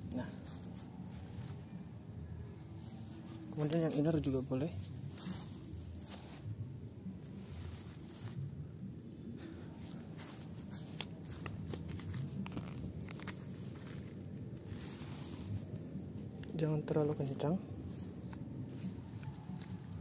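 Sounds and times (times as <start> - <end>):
low background noise: 0.0 - 20.0
handling tent cords: 2.7 - 20.0.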